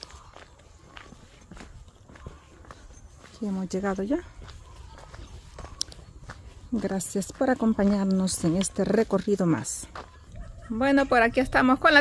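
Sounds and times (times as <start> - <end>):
footsteps walking: 0.0 - 12.0.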